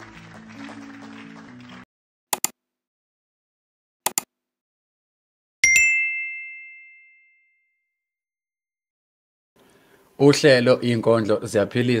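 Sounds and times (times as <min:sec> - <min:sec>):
notification bell ding: 0:05.6 - 0:07.6.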